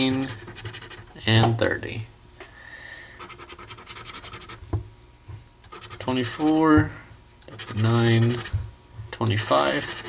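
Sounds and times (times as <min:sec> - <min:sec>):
scratching lottery ticket coating: 0:05.7 - 0:06.6, 0:07.5 - 0:08.5, 0:09.5 - 0:10.0.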